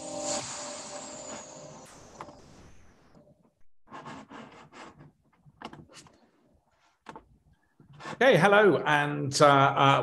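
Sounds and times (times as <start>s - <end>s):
electronic jingle chord: 0.0s - 2.1s.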